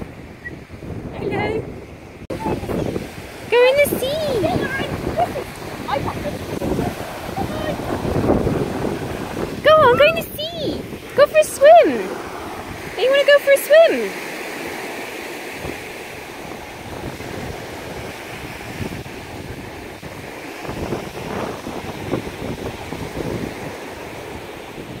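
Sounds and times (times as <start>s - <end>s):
small waves washing onto sand: 0.0s - 25.0s
wind on microphone: 0.0s - 25.0s.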